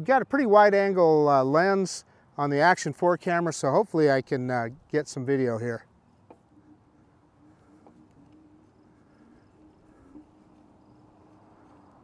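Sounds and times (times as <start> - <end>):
electric scooter motor hum: 5.9 - 12.0.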